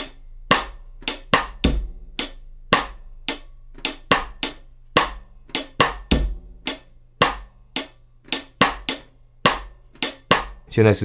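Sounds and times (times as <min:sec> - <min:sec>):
bass drum: 0:00.0 - 0:10.7
hi-hat strokes: 0:00.0 - 0:10.7.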